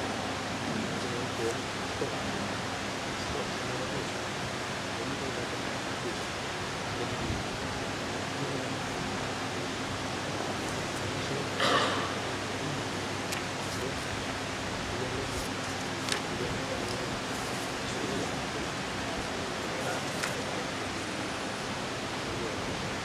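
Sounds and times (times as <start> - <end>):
room noise hiss: 0.0 - 23.0.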